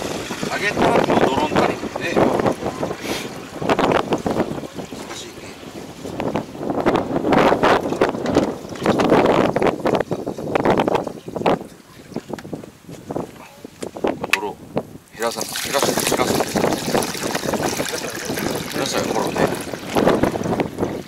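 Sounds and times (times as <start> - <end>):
wind noise on microphone: 0.0 - 21.0
water running into plastic jug: 15.2 - 21.0.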